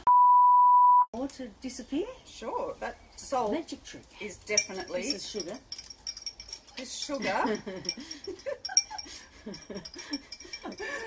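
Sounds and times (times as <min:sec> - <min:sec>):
women laughing: 0:07.2 - 0:11.0.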